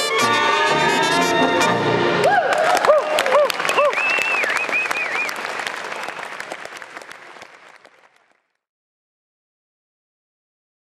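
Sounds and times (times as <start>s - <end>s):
audience applauding and cheering: 0.0s - 8.6s
whoops: 2.2s - 5.4s.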